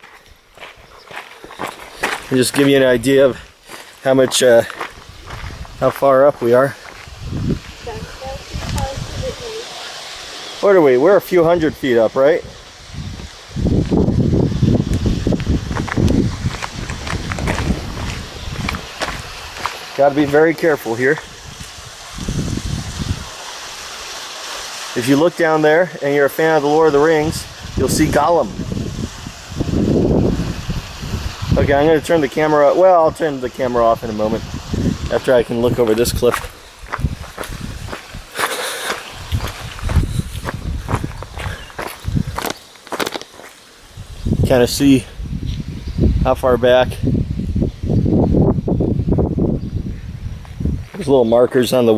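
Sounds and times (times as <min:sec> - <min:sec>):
footsteps crunching on rock: 0:00.0 - 0:07.8, 0:15.2 - 0:21.8, 0:36.2 - 0:43.7, 0:50.4 - 0:51.7.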